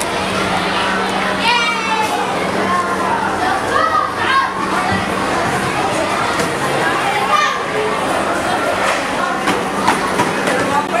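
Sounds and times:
steady low hum: 0.0 - 10.9
children calling out: 0.0 - 11.0.

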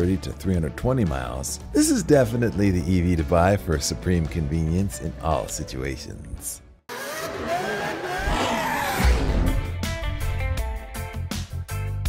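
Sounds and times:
car engine revving: 6.9 - 10.9.

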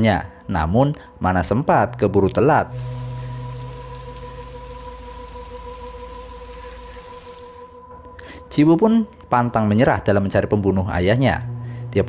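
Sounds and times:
droning background music: 0.0 - 12.0
steady hiss: 2.7 - 7.8.

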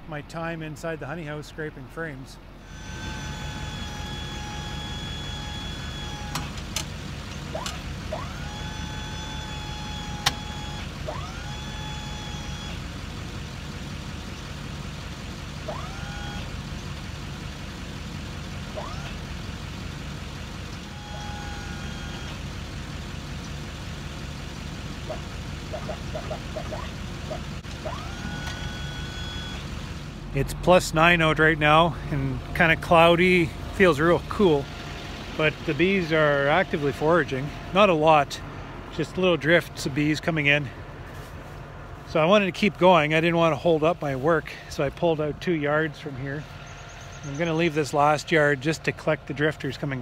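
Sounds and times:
truck engine idling: 0.0 - 50.0
hydraulic boom whine: 2.5 - 13.0, 15.6 - 16.6, 18.6 - 19.5, 20.6 - 23.2, 24.6 - 48.8.

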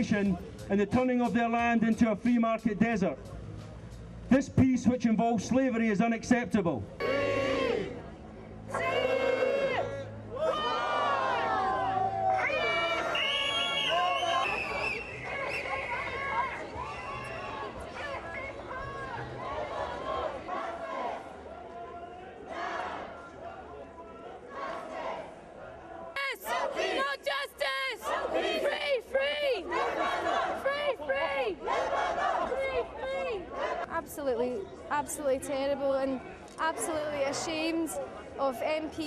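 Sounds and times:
protesters chanting: 7.0 - 8.1, 12.5 - 34.2
voices calling out in long shouts: 7.0 - 8.1, 8.7 - 33.9
crowd murmur: 7.0 - 39.0.

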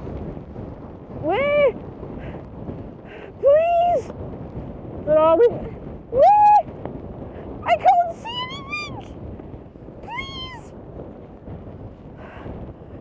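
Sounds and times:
wind on microphone: 0.0 - 13.0.

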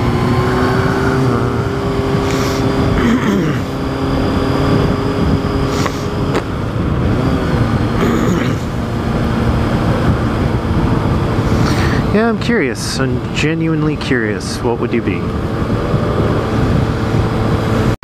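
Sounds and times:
motorcycle engine cruising: 0.0 - 18.0
wind rush: 0.0 - 18.0.

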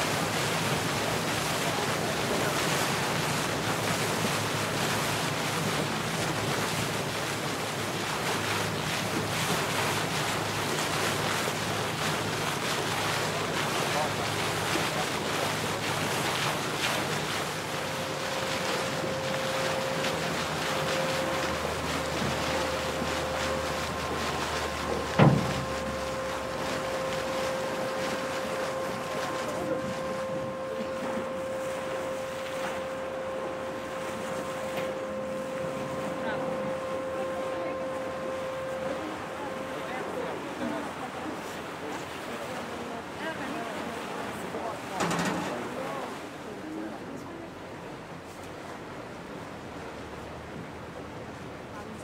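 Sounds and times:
steady hum: 0.0 - 52.0
water rushing past boat: 0.0 - 52.0
sharp thump: 25.1 - 25.7.

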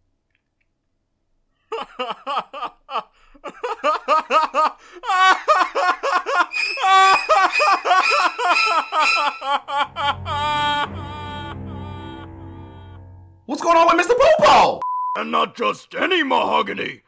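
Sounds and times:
cartoon voice giggling: 5.5 - 11.4
low ominous drone: 9.9 - 13.5.

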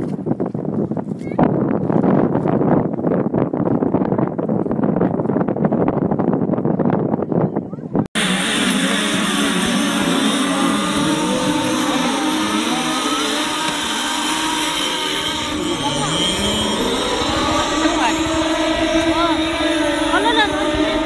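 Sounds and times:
voices: 7.7 - 21.0
model boat engines buzzing: 8.2 - 21.0.

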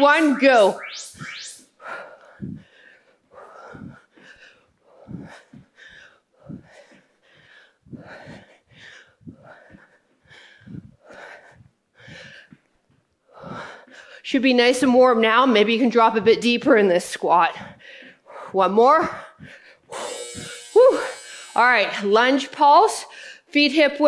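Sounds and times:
woman breathing hard: 1.8 - 14.3, 17.6 - 21.6, 23.0 - 23.5.

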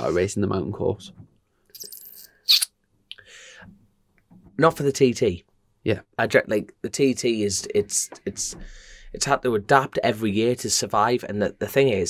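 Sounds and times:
breathing close to microphone: 3.2 - 3.8, 8.6 - 9.2.

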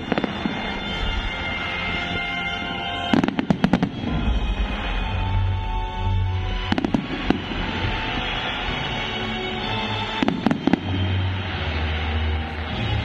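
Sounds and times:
fireworks bangs: 0.0 - 13.0
fireworks crackling: 0.0 - 13.0
loud show music: 0.0 - 13.0.

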